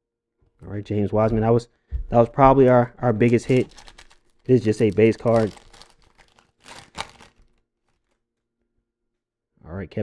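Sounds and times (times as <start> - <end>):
plastic wrapper crinkling: 2.6 - 8.2.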